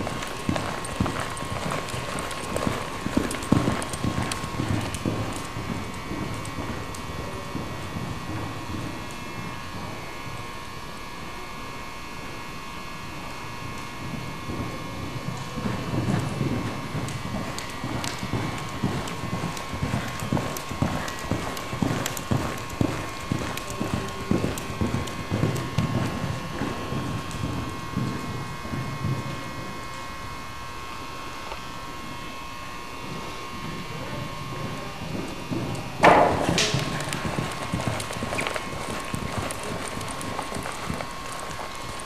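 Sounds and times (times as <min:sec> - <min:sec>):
pony hoofbeats cantering: 0:00.0 - 0:10.4, 0:13.7 - 0:30.1, 0:33.0 - 0:42.0
faint steady hum: 0:00.0 - 0:42.0.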